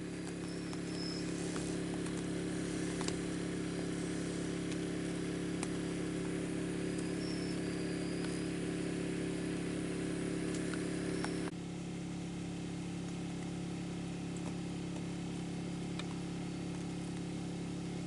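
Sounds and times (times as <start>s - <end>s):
small engine humming: 0.0s - 18.0s.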